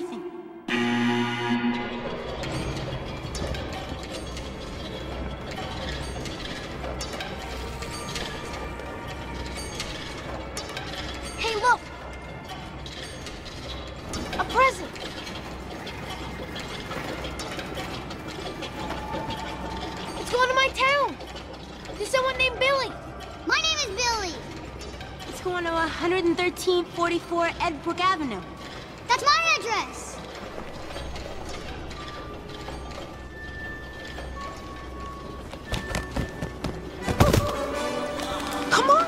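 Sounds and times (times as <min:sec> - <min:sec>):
conveyor machinery clattering: 0:00.7 - 0:39.0.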